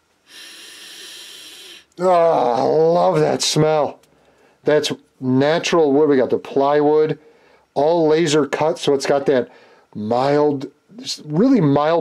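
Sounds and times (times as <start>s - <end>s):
person sniffing: 0.3s - 1.9s.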